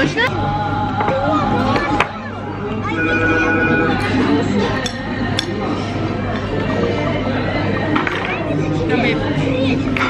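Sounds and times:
murmur of diners: 0.0s - 10.0s.

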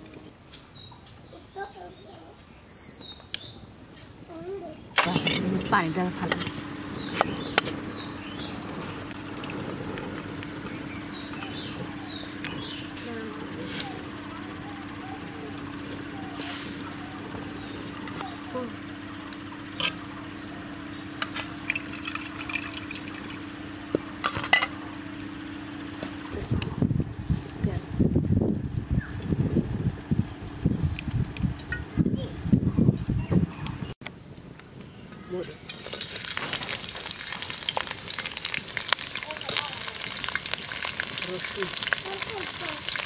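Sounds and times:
small birds chirping: 0.1s - 9.5s, 10.1s - 22.9s, 34.6s - 43.0s
steady low hum: 2.3s - 43.0s
uneven low rumbling: 5.0s - 43.0s.

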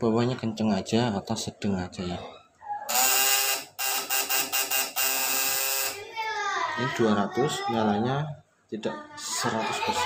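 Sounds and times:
harsh electrical buzz: 2.9s - 6.0s.

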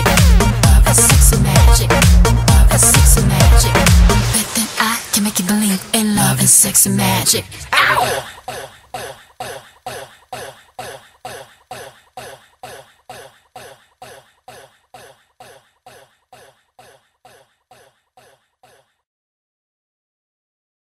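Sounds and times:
echoing vocal stutter: 0.0s - 19.0s.

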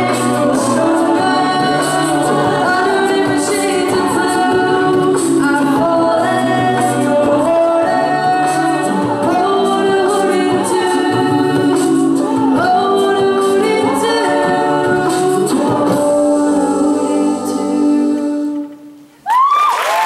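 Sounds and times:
women singing a cappella: 0.0s - 19.0s.

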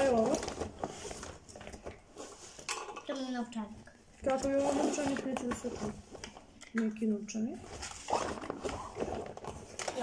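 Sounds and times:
plastic rustling: 0.0s - 10.0s.

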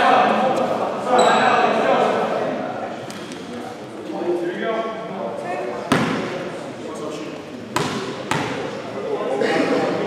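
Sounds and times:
players chatting: 0.0s - 10.0s
basketball bouncing on wooden floor: 7.8s - 8.6s.

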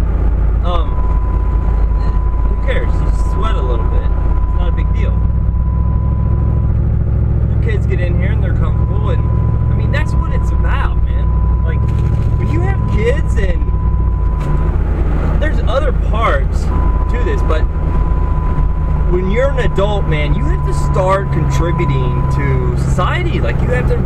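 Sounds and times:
road and engine rumble in cabin: 0.0s - 24.0s
man talking: 0.6s - 1.1s, 1.9s - 5.3s, 7.5s - 13.7s, 15.4s - 17.7s, 19.1s - 24.0s.

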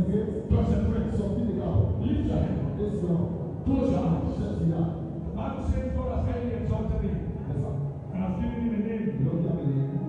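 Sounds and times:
man speaking into a microphone: 0.0s - 10.0s.

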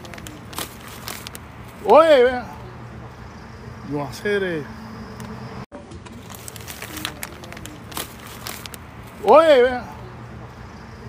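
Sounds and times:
steady low hum: 0.0s - 5.7s.

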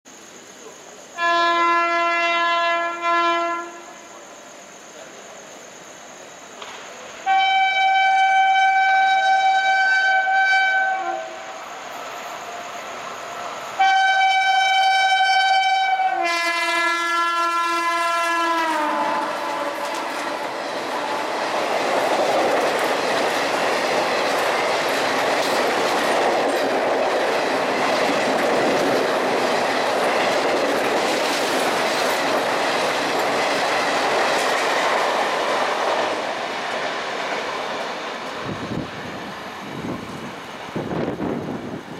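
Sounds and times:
train rushing roar: 0.1s - 41.9s
locomotive horn blasts: 1.2s - 3.9s, 7.2s - 11.5s, 13.8s - 19.9s
rail clatter: 6.6s - 7.0s, 18.2s - 41.9s.

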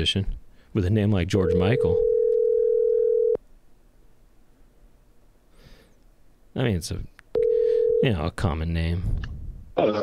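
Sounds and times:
telephone ringback tone: 1.5s - 3.4s, 7.4s - 8.1s
faint phone line hiss: 7.3s - 8.3s.

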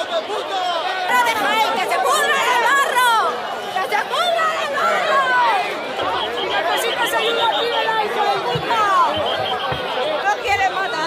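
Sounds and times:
crowd shouting angrily: 0.0s - 11.0s.

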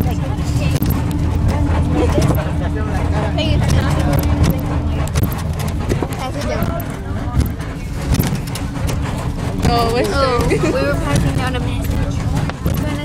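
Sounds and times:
bus engine and tyres rumbling: 0.0s - 13.0s
rattles and knocks: 0.0s - 13.0s
steady hum: 0.0s - 13.0s
voices chattering: 0.0s - 13.0s.

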